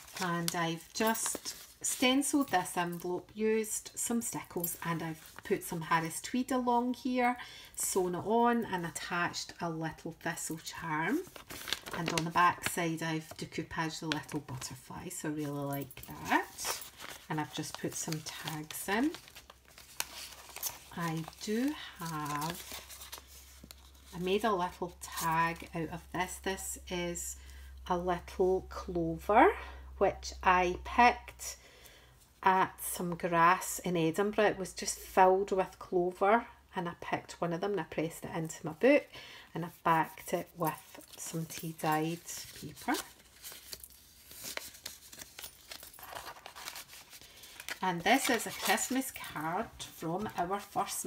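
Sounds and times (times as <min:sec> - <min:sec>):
paper rustling and crinkling: 0:00.0 - 0:02.6, 0:11.0 - 0:13.4, 0:15.4 - 0:24.3, 0:40.6 - 0:51.0.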